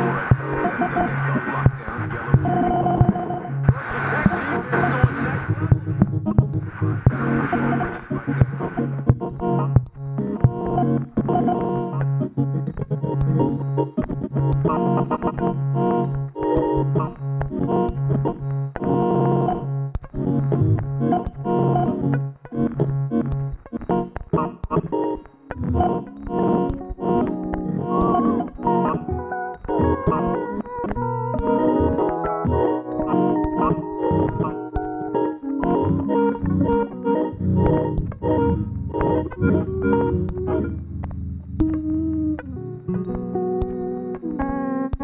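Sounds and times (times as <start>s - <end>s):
low pulsing synthesizer tone: 0.0s - 9.6s, 32.7s - 44.2s
stuttering synthesizer chords and clicks: 0.0s - 45.0s.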